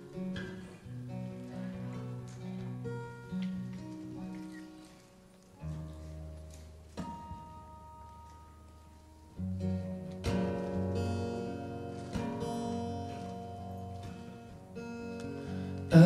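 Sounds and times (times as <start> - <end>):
acoustic guitars playing chords: 0.0 - 16.0.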